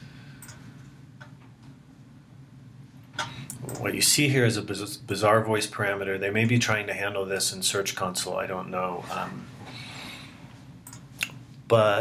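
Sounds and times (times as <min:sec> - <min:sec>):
low steady hum: 0:00.0 - 0:12.0
keyboard and mouse clicks: 0:00.4 - 0:00.6, 0:10.8 - 0:11.4.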